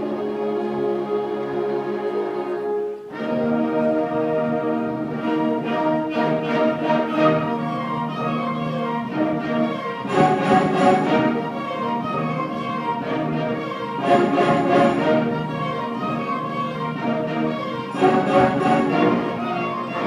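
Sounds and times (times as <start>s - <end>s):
concert band playing: 17.9s - 19.4s.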